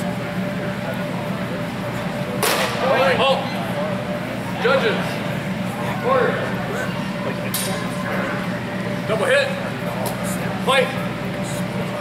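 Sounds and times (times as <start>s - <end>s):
faint murmuring voices: 0.0s - 12.0s.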